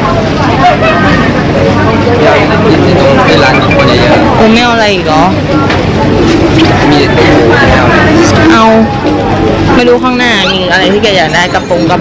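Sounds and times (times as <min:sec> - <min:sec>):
dense background noise: 0:00.0 - 0:12.0
people talking: 0:00.0 - 0:12.0.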